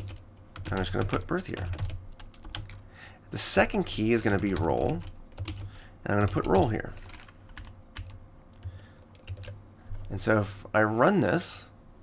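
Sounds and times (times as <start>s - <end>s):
computer keyboard keystrokes: 0.0s - 2.8s, 4.3s - 9.6s.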